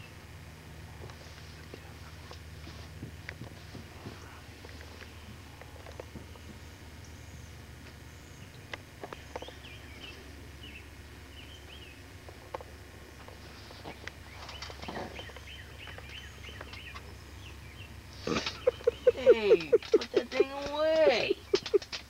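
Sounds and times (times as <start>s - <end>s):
birds chirping: 0.0s - 22.0s
steady low hum: 0.0s - 22.0s.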